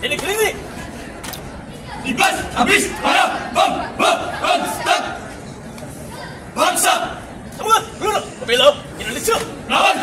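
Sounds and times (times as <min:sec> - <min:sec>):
group shouting in unison: 0:09.7 - 0:10.0.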